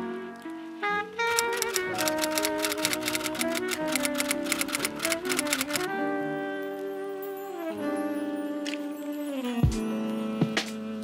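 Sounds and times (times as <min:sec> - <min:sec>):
instrumental background music: 0:00.0 - 0:11.0
rapid typewriter key clicks: 0:01.3 - 0:05.9.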